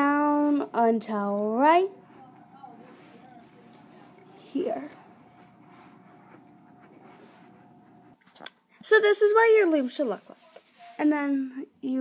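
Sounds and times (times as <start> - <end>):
thin steady hum: 0.0 - 11.8.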